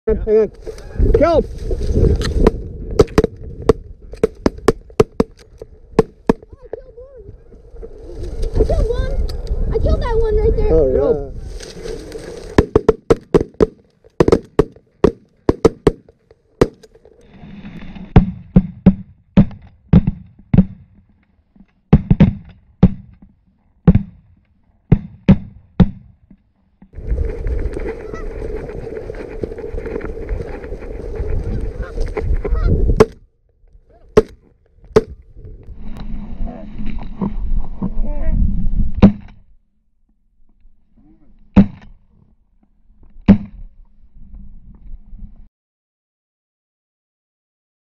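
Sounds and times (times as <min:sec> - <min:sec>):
goose honking: 0:28.0 - 0:28.3.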